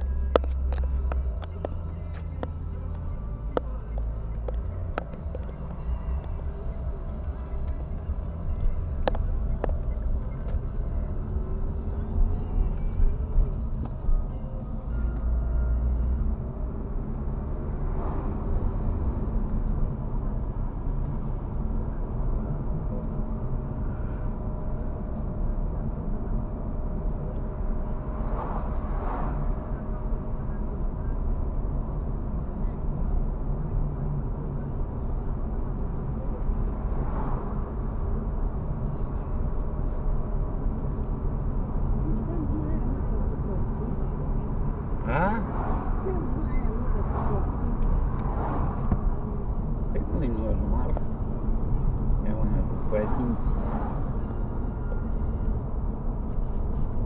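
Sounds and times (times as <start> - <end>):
car road and engine rumble: 0.0 - 57.0.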